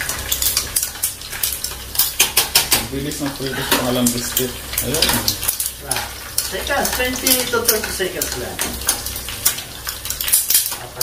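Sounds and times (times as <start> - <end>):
pork skin sizzling in oil: 0.0 - 11.0
utensil scraping a pan: 0.0 - 11.0.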